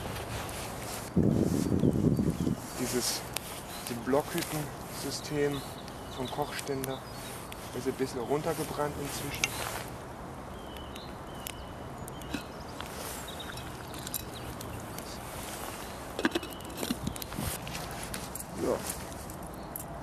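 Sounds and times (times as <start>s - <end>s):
steady fire hiss: 0.0s - 19.5s.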